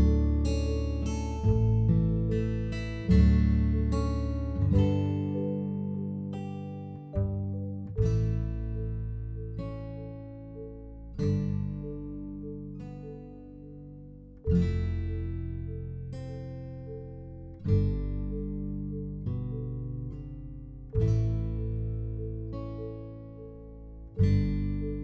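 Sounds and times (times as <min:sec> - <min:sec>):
acoustic guitar chords: 0:00.0 - 0:25.0.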